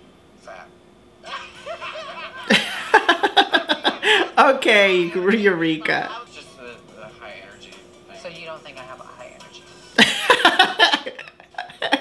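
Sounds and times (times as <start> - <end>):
woman laughing loudly: 1.3 - 4.3, 10.0 - 12.0.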